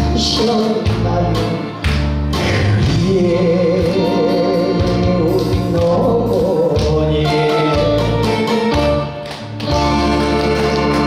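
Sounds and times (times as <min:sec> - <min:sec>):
live band with electronic keyboard: 0:00.0 - 0:11.0.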